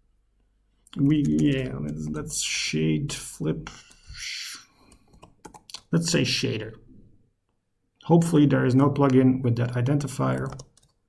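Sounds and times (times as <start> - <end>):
computer keyboard typing: 1.0 - 2.3, 4.8 - 5.9, 10.2 - 11.0.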